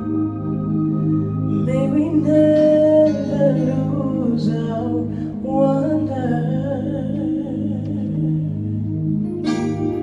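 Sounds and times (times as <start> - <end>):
sustained keyboard chords: 0.0 - 10.0
woman singing: 1.5 - 8.6.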